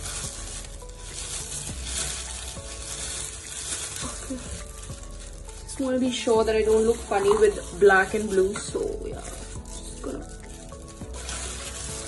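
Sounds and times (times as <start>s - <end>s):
plastic gloves crinkling: 0.0s - 12.0s.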